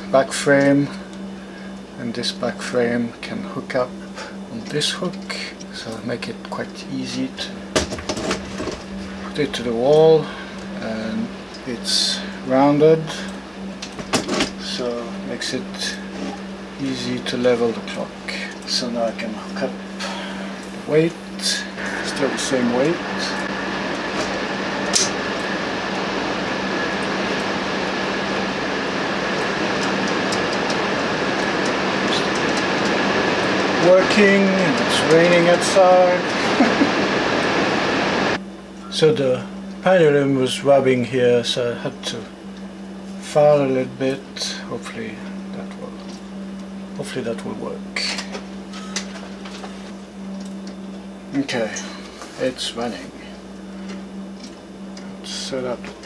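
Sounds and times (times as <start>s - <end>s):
steady rain hiss: 0.0s - 38.4s, 39.0s - 56.0s
faint low hum: 0.0s - 56.0s.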